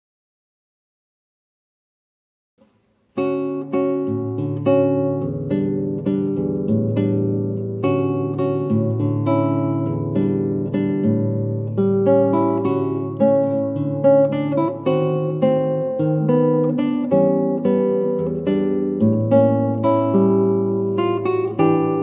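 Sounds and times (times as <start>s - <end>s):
fingerstyle classical guitar: 2.6s - 22.0s.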